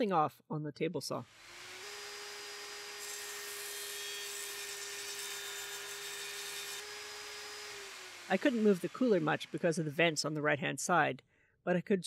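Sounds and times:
saw cutting through wood: 1.2s - 10.3s
table saw whine: 1.3s - 10.2s.

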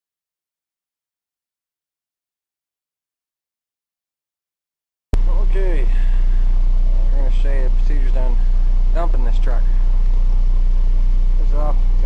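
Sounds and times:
diesel engine idling: 5.2s - 12.0s.

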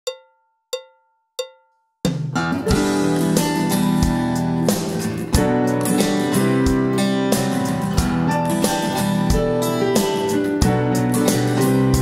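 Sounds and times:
cowbell-like metallic clicks: 0.0s - 2.0s.

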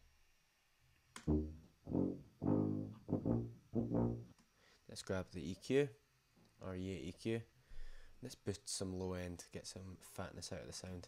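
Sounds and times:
tuba playing low notes: 1.2s - 4.4s.

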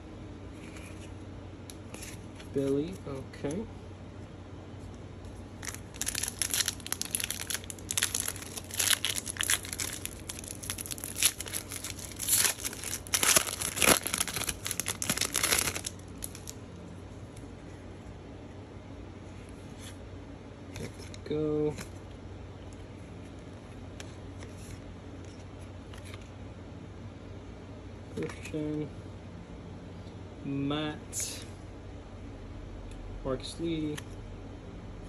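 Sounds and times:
plastic wrapper tearing and crinkling: 5.6s - 16.6s.

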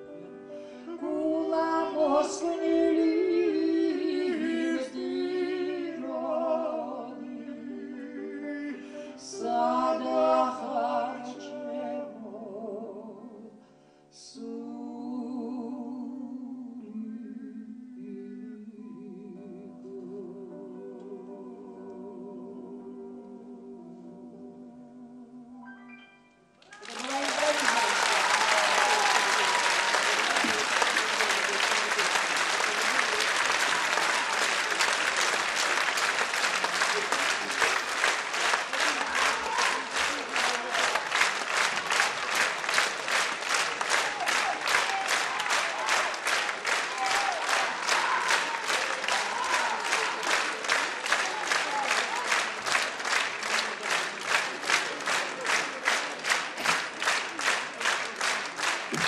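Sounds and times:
audience applauding: 26.6s - 59.0s
rhythmic clapping in unison: 26.6s - 59.0s.

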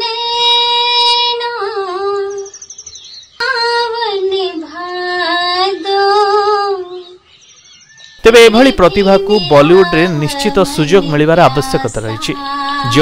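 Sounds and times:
woman singing high notes: 11.5s - 13.0s.

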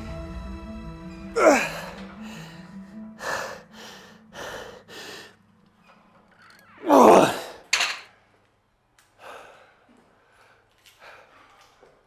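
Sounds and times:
soft background music: 0.0s - 7.3s
man breathing hard: 1.4s - 5.4s, 9.1s - 12.0s.

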